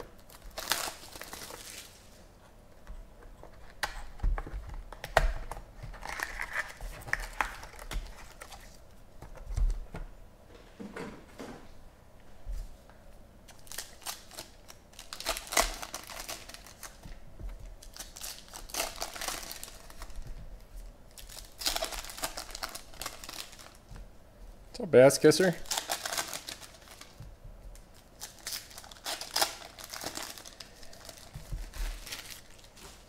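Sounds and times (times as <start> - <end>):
card wrappers crinkling and tearing: 0.2 - 2.1, 4.9 - 8.8, 13.5 - 17.2, 17.8 - 20.2, 21.1 - 23.9, 25.3 - 27.2, 27.8 - 33.0.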